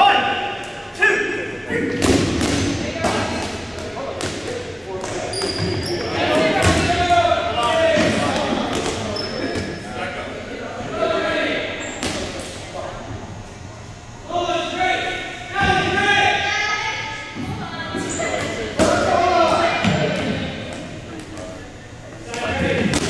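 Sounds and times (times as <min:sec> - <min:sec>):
balls bouncing on gym floor: 0:01.9 - 0:09.8, 0:18.2 - 0:21.5, 0:22.3 - 0:23.0.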